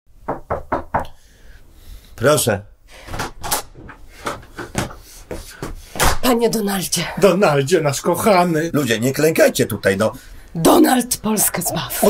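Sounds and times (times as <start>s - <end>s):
knocking on door: 0.2s - 1.1s.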